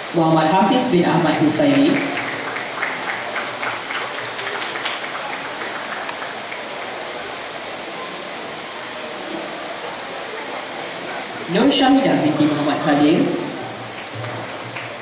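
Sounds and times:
audience applauding: 0:00.8 - 0:07.4, 0:12.3 - 0:15.0.

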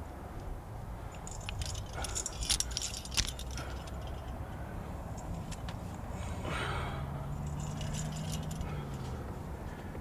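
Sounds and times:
carabiners clinking: 0:01.0 - 0:06.1, 0:07.2 - 0:09.3.

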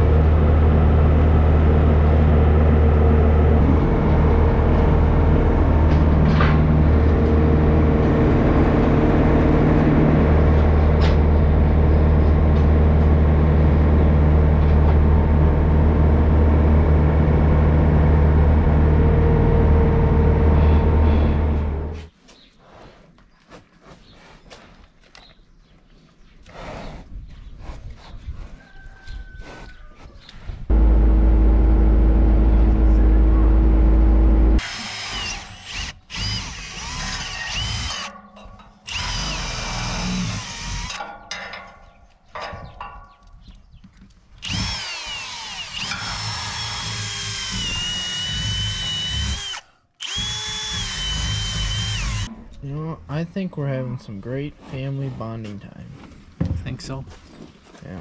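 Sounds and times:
loud low steady hum: 0:00.0 - 0:22.0, 0:30.7 - 0:35.3
cordless drill boring into metal: 0:34.6 - 0:38.1, 0:38.9 - 0:41.0, 0:44.4 - 0:52.3.

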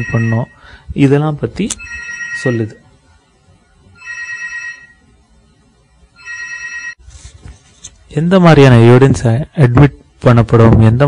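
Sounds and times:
electronic telephone ring: 0:00.0 - 0:00.6, 0:01.8 - 0:02.8, 0:04.0 - 0:05.1, 0:06.2 - 0:07.0.

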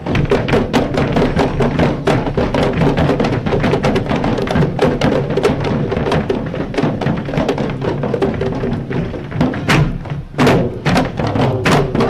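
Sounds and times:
barrel drums booming fast: 0:00.0 - 0:12.0.

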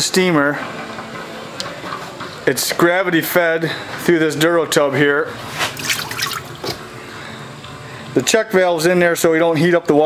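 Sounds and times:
water trickling and dripping into tub: 0:05.8 - 0:06.8.

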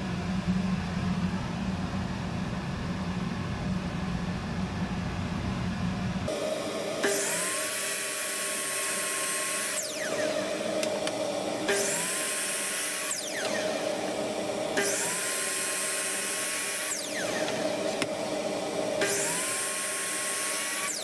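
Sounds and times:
steady machine hum: 0:00.0 - 0:21.0
miter saw motor whine: 0:06.3 - 0:21.0.

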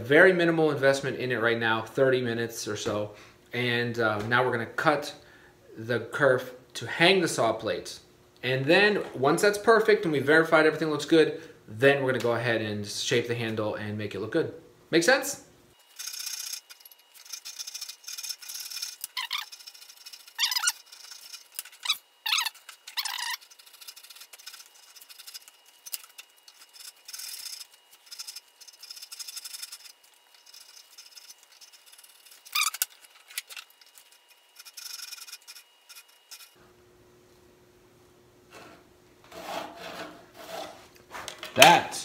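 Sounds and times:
hand saw cutting wood: 0:39.2 - 0:41.2.

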